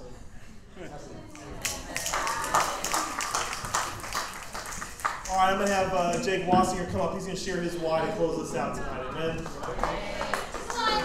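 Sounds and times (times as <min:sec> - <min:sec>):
audience applauding: 0:01.4 - 0:06.2, 0:09.4 - 0:11.0.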